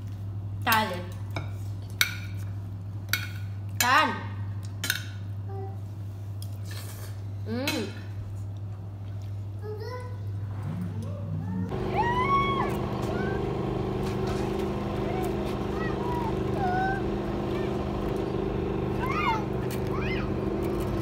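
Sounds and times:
road traffic hum: 10.2 - 21.0
short high rising calls: 11.7 - 20.6.

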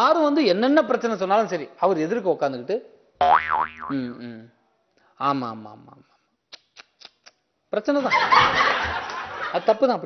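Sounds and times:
comic twangy boing: 3.2 - 4.0.

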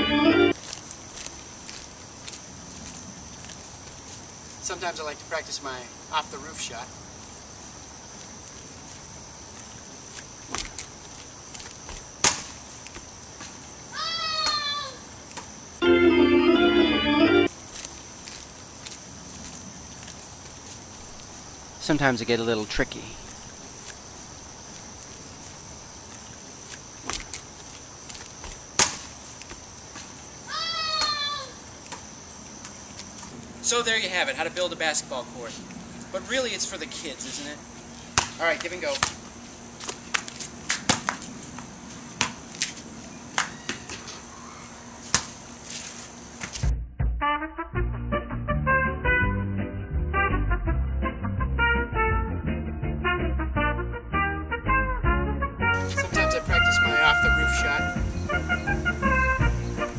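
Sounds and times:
brass-led swing music: 0.0 - 0.6, 15.8 - 17.5, 46.7 - 59.9
insects droning: 0.0 - 46.7, 55.8 - 59.9
basketball bouncing on pavement: 10.5 - 11.0, 27.0 - 27.5, 38.1 - 39.2, 39.8 - 44.1, 45.0 - 45.4.

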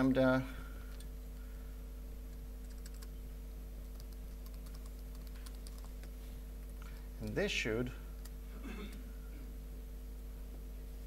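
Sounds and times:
steady electrical hum: 0.0 - 11.0
faint keystrokes on a keyboard: 2.7 - 3.1, 3.9 - 6.8.

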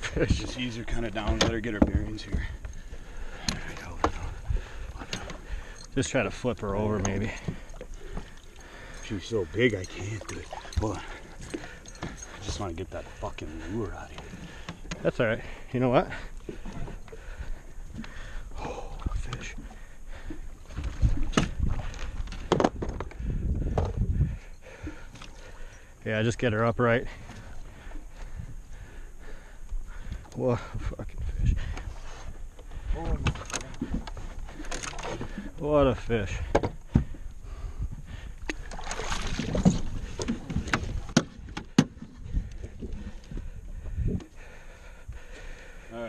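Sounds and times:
water sloshing against boat: 0.0 - 46.0.

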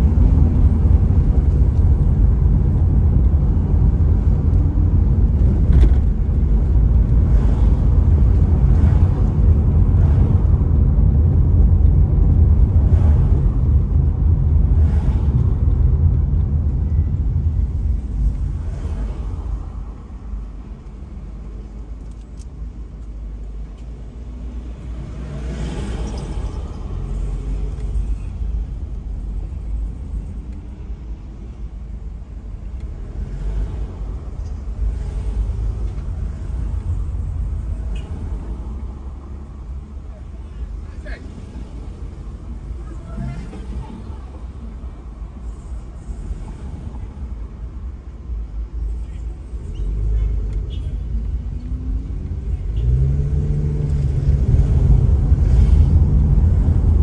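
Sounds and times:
car engine and tyres rumbling: 0.0 - 57.0.

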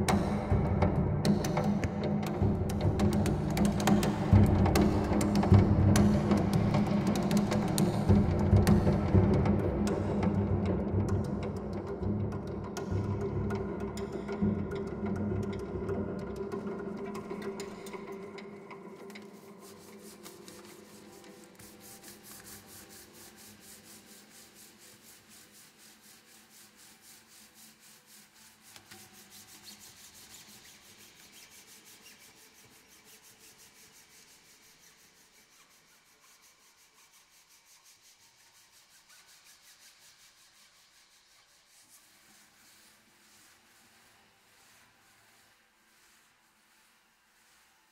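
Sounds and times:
piano strings being rubbed: 16.6 - 47.7.

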